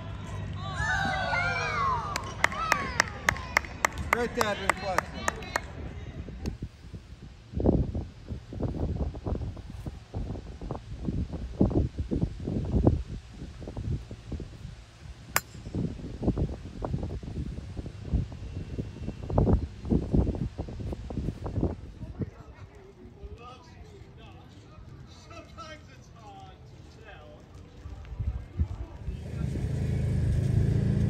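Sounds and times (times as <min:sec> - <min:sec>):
wind buffeting microphone: 0:02.2 - 0:23.3, 0:27.8 - 0:31.0
golf club striking ball: 0:15.4 - 0:16.0.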